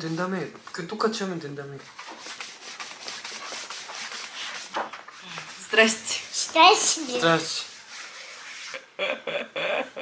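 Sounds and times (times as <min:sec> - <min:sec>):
hand rubbing across tabletop: 0:01.8 - 0:08.9.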